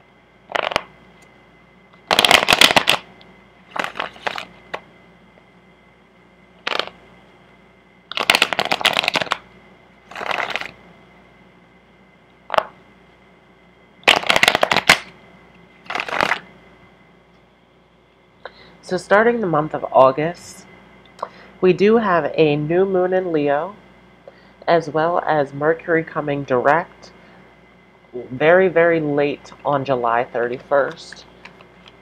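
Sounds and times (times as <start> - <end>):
cards being shuffled by hand: 0.5 - 0.9, 2.1 - 3.0, 3.7 - 4.8, 6.6 - 7.0, 8.1 - 9.4, 10.1 - 10.8, 14.0 - 15.1, 15.8 - 16.5.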